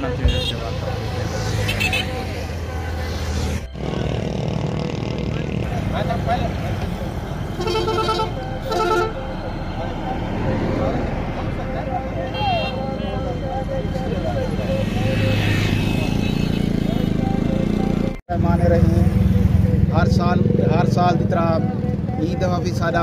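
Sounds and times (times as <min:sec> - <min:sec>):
men talking: 0:00.0 - 0:01.5, 0:05.2 - 0:07.0, 0:09.4 - 0:12.4, 0:18.3 - 0:23.0
motorcycles passing: 0:00.0 - 0:23.0
road traffic: 0:00.0 - 0:23.0.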